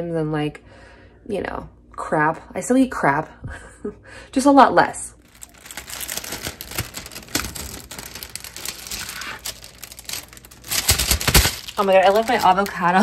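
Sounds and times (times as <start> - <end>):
plastic packaging crinkling: 5.2 - 13.0.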